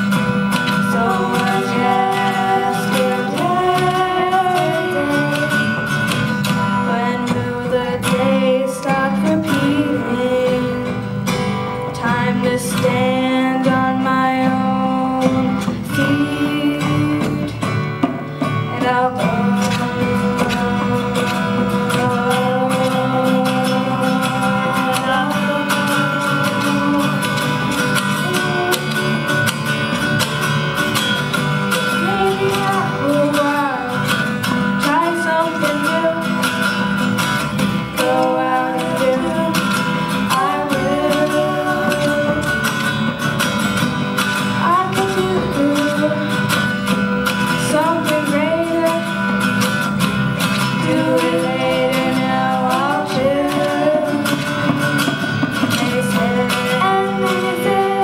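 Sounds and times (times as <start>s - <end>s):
women singing together: 0.0s - 6.0s, 6.8s - 10.9s, 11.9s - 17.8s, 18.6s - 30.1s, 31.8s - 36.8s, 37.6s - 43.1s, 44.5s - 46.7s, 50.5s - 58.0s
acoustic guitars strummed: 0.0s - 58.0s.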